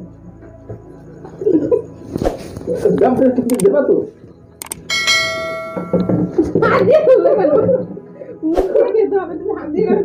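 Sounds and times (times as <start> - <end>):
sharp click: 3.5 - 3.7, 4.6 - 4.9
bright bell chime: 4.8 - 6.6.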